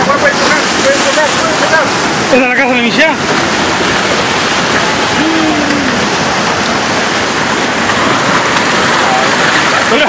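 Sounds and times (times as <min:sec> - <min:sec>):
flood water rushing: 0:00.0 - 0:10.0.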